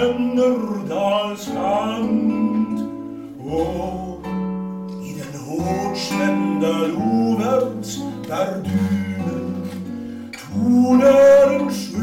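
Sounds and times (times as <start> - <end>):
fingerpicked classical guitar: 0.0 - 12.0
man singing a ballad: 0.0 - 12.0.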